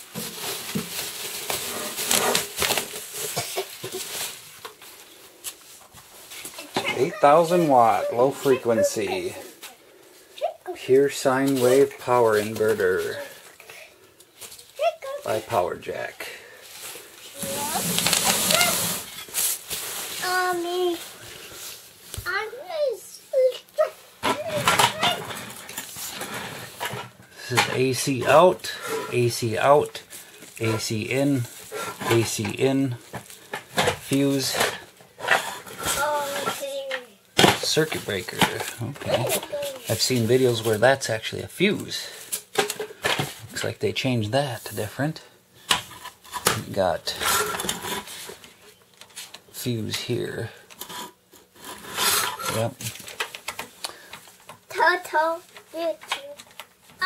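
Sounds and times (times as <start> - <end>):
bubble wrap crinkling: 0.0 - 6.8, 16.6 - 22.2
handling rustle: 0.0 - 13.6, 16.6 - 22.5.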